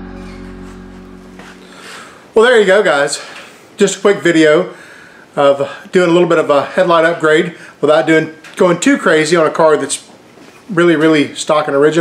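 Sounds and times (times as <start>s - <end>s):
background music with held tones: 0.0s - 2.3s.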